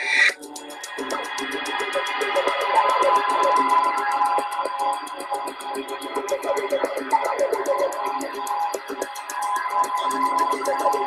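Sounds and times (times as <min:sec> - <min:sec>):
fast ticking beat: 0:00.0 - 0:11.0
held steady music tones: 0:00.0 - 0:11.0.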